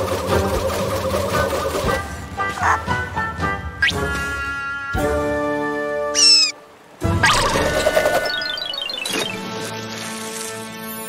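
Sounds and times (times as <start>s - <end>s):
cartoon background music: 0.0s - 11.0s
high-pitched squeak: 6.2s - 6.6s.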